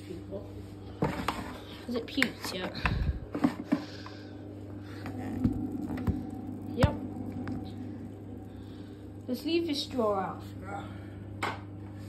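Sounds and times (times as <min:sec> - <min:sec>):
washer-dryer humming: 0:00.0 - 0:12.0.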